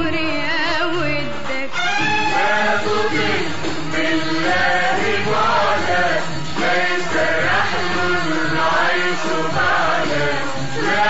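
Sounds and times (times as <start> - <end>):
instrumental accompaniment: 0.0 - 11.0
chant-like sung melody: 2.0 - 11.0.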